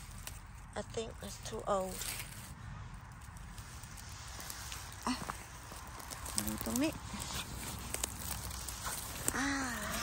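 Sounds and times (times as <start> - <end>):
rustling in dry leaves: 0.0 - 10.0.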